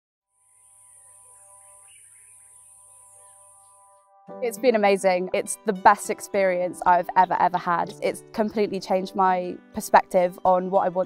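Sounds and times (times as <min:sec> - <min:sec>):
faint birdsong: 0:00.4 - 0:04.2.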